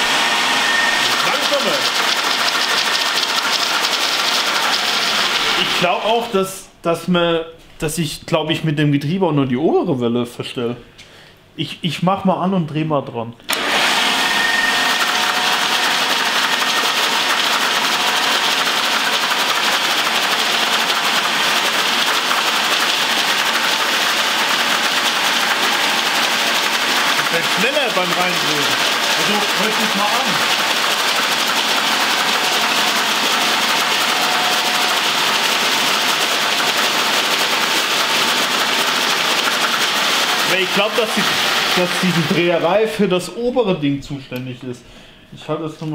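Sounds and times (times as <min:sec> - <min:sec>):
electric machine whirring: 0:00.0 - 0:06.3, 0:13.5 - 0:42.9.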